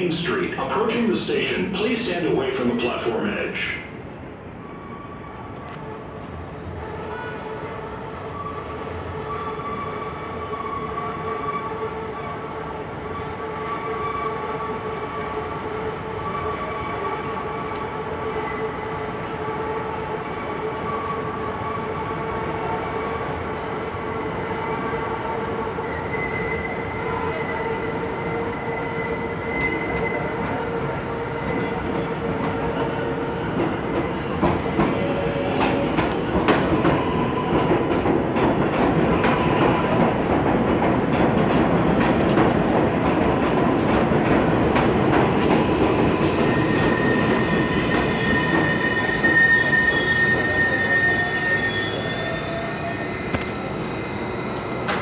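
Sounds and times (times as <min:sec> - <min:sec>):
high wheel squeal: 0:06.7 - 0:12.4, 0:24.4 - 0:27.7, 0:45.6 - 0:54.9.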